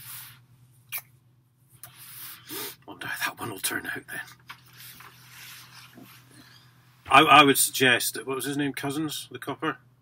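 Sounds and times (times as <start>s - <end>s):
faint hiss: 0.0s - 1.0s
low steady hum: 0.0s - 10.0s.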